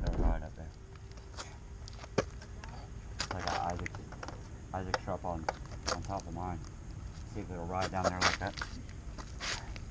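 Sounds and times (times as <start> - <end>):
low microphone rumble: 0.0 - 0.7.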